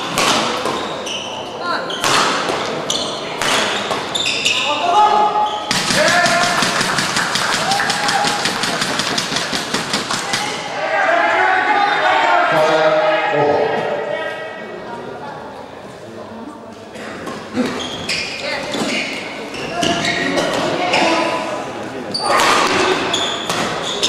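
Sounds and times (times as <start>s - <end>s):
racket hitting shuttlecock: 0.0s - 0.9s, 2.0s - 2.8s, 3.4s - 4.1s, 22.4s - 23.9s
shoe squeaks on court: 0.7s - 2.2s, 2.9s - 4.8s, 17.7s - 21.1s, 22.1s - 24.0s
people shouting: 4.8s - 6.7s, 7.4s - 8.8s, 10.1s - 14.4s
fast clapping: 6.3s - 10.3s.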